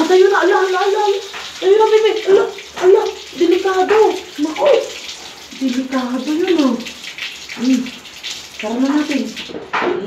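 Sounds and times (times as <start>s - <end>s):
water sloshing in a plastic bucket: 0.0s - 10.0s.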